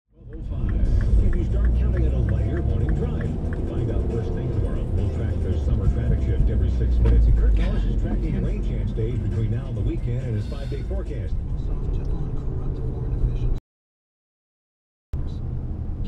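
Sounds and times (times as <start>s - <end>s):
car engine and road rumble: 0.1s - 13.6s, 15.2s - 16.0s
talk from car radio: 0.2s - 13.6s.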